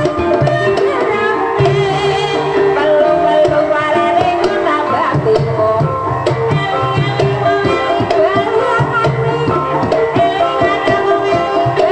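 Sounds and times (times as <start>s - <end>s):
ringing metal gamelan tones: 0.0s - 11.9s.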